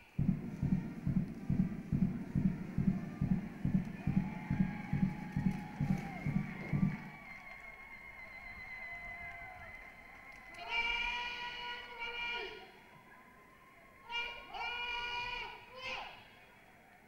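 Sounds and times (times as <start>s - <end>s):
bass drum beating: 0.0s - 7.2s
military band marching music: 0.0s - 8.1s
shouted word of command: 14.0s - 16.3s.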